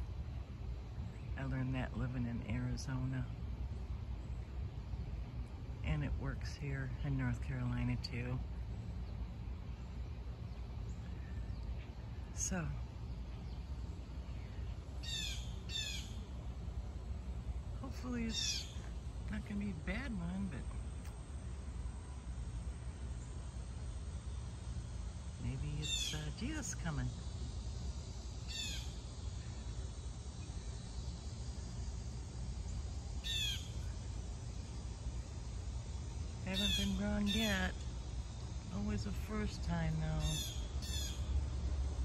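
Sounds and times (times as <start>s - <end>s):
low background hum: 0.0s - 42.0s
low background rumble: 0.0s - 42.0s
bird calling: 14.4s - 16.3s, 17.9s - 19.8s, 25.5s - 27.0s, 28.4s - 29.6s, 33.2s - 34.0s, 36.5s - 37.8s, 39.9s - 41.3s.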